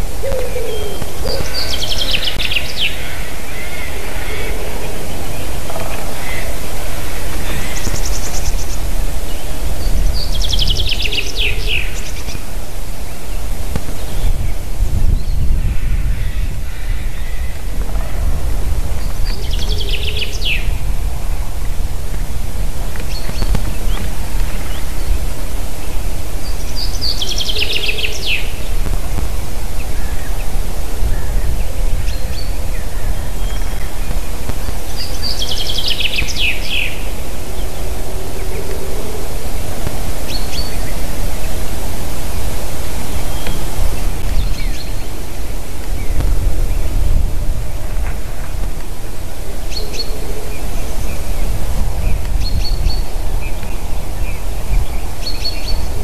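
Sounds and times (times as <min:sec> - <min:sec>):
steady low rumble: 0:00.0 - 0:56.0
faint bird chirps: 0:00.3 - 0:12.5.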